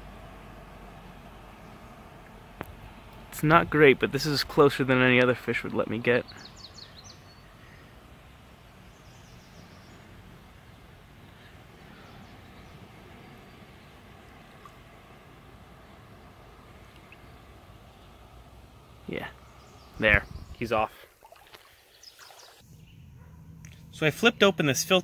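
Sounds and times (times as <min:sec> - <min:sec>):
low outdoor rumble: 0:00.0 - 0:21.3.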